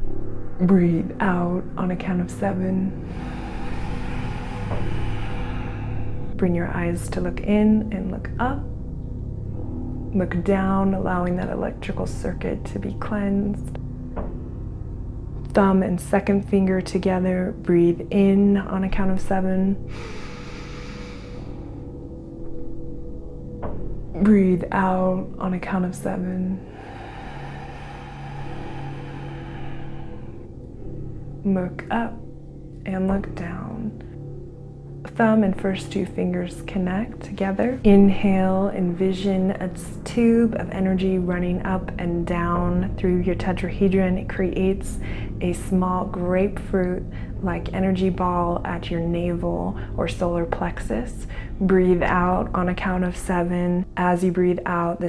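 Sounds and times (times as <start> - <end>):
ambient meditation drone: 0.0 - 55.0
soft airy hiss: 2.8 - 6.8, 19.8 - 22.0, 25.9 - 31.4.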